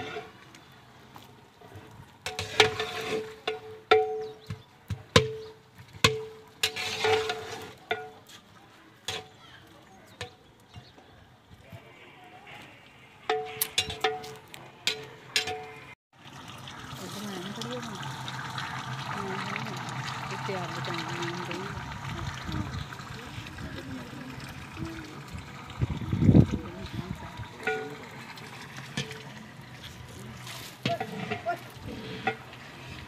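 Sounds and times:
simmering pot hissing: 0:16.2 - 0:33.0.

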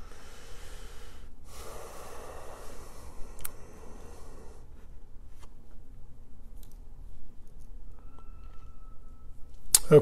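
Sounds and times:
man breathing close to microphone: 0:00.0 - 0:05.1.

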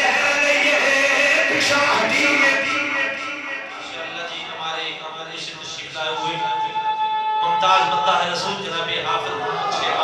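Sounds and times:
man chanting: 0:00.0 - 0:08.5.

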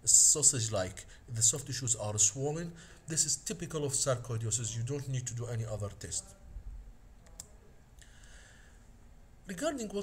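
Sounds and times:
low background hiss: 0:00.0 - 0:10.0
faint mouse click: 0:07.2 - 0:07.6.

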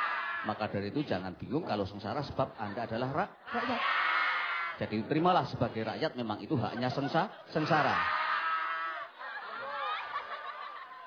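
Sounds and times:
audience laughing: 0:06.5 - 0:11.0.

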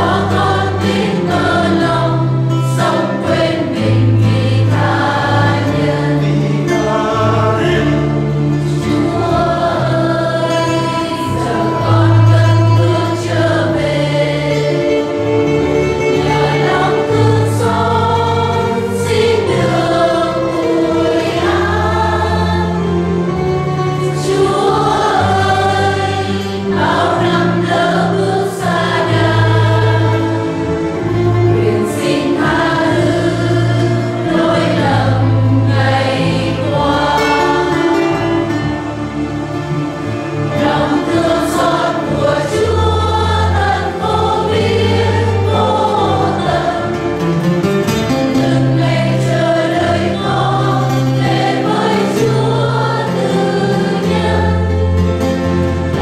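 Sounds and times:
choir and congregation singing a hymn: 0:00.0 - 0:56.0.

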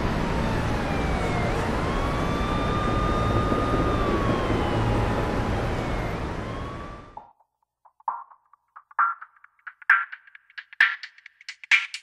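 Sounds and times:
siren wailing: 0:00.0 - 0:07.2
traffic rushing: 0:00.0 - 0:07.2.

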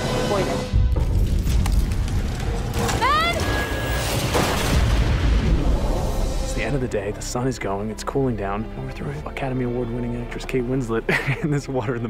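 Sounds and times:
film music: 0:00.0 - 0:12.0
deep rumbling booms: 0:04.2 - 0:06.8.

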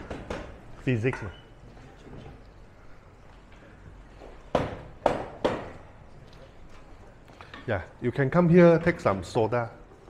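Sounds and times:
sharp knocks: 0:04.5 - 0:05.8.

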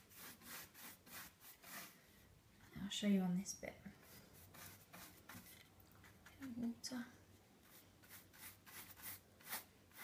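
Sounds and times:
paintbrush strokes on wood: 0:00.0 - 0:02.1, 0:04.0 - 0:06.7, 0:07.6 - 0:10.0
person speaking: 0:06.0 - 0:07.3.

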